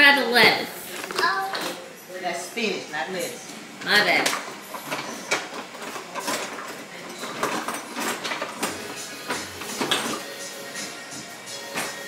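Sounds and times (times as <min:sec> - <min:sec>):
faint background music: 0:00.0 - 0:12.0
kitchen utensils clattering in drawer: 0:04.1 - 0:10.3.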